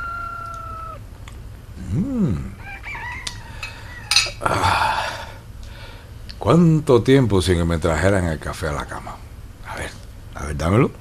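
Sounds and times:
rooster crowing: 0.0 - 1.1, 2.6 - 4.4.

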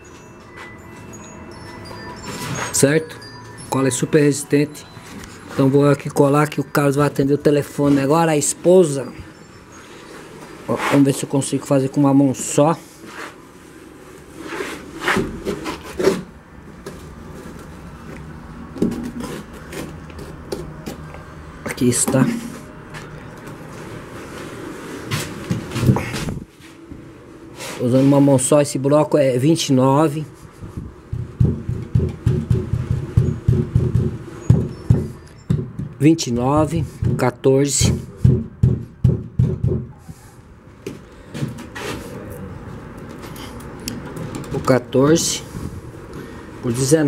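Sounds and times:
dull knocks on clay block: 31.1 - 36.0.

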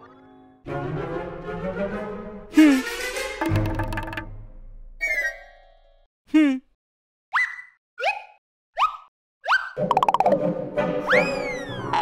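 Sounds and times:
rising cartoon bloops: 9.8 - 10.4.

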